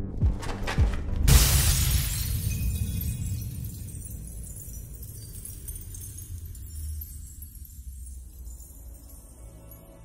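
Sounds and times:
low film score music: 0.0 - 1.4
glass window shattering: 1.3 - 9.2.

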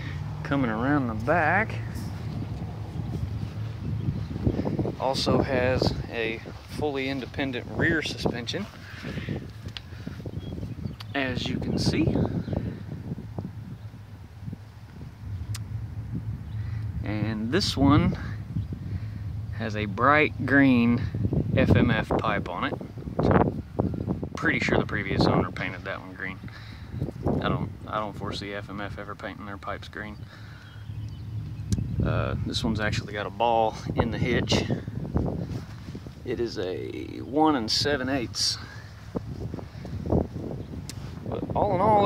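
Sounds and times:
microphone handling noise: 0.0 - 19.3, 30.4 - 36.4, 38.1 - 42.0
wind rumbling on microphone: 0.0 - 42.0.

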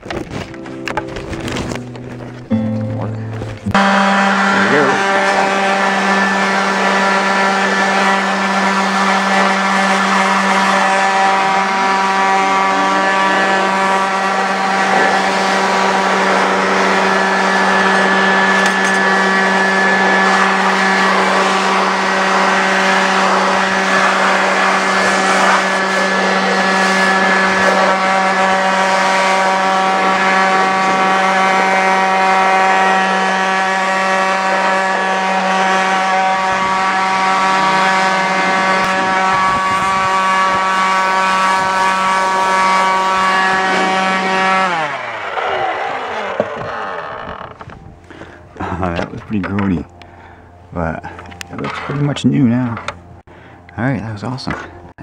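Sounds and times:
leaf blower running: 0.0 - 53.7.

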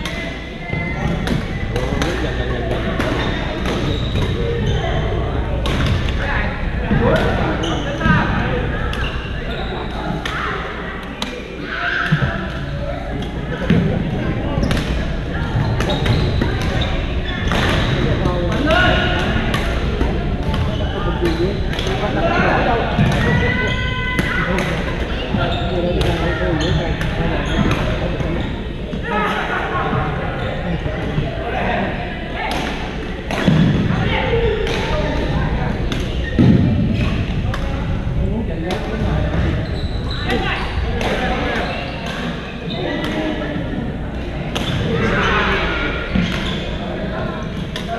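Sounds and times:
murmur of voices: 0.0 - 47.9
players chatting: 0.0 - 47.9.

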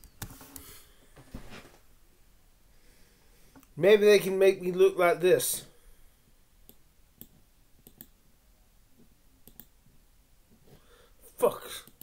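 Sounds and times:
computer mouse clicks: 6.7 - 8.2, 9.4 - 9.7.

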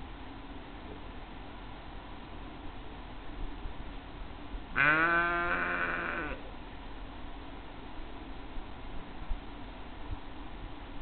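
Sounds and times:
sheep bleating: 4.7 - 6.4.

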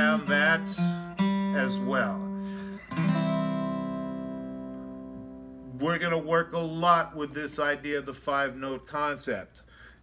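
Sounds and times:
acoustic guitar notes plucked: 0.0 - 6.3.

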